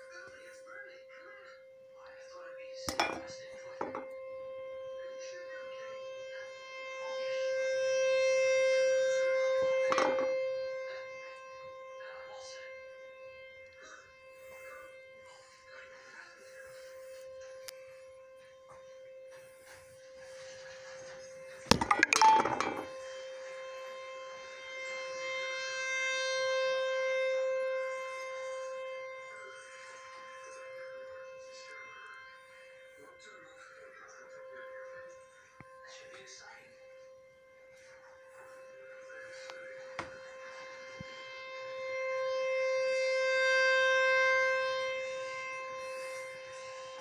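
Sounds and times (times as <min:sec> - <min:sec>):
tornado siren wailing: 0:00.0 - 0:47.0.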